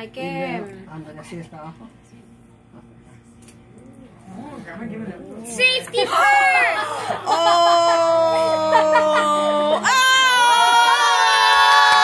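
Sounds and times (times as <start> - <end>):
voices: 3.7 - 11.2
person screaming: 7.3 - 12.0.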